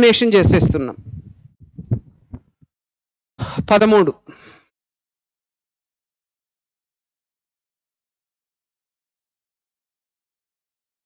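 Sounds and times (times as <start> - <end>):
soft low thumps: 0.5 - 2.6.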